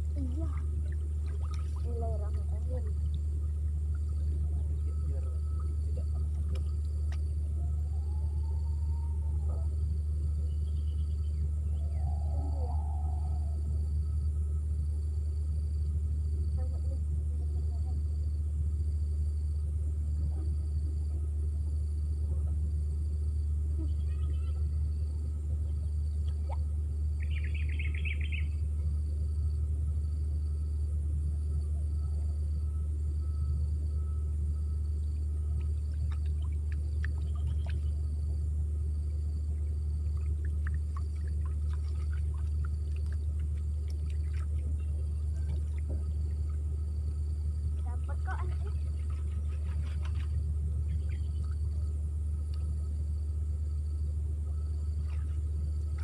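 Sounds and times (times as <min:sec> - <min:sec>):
low rumble: 0:00.0 - 0:56.0
bird calls and chirps: 0:10.4 - 0:13.4, 0:23.8 - 0:24.7, 0:27.2 - 0:28.6, 0:37.2 - 0:38.0, 0:50.9 - 0:51.6.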